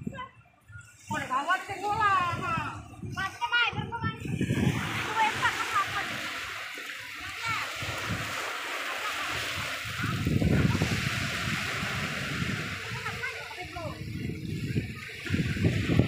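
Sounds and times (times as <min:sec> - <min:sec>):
sea waves washing onto shore: 0:00.8 - 0:16.0.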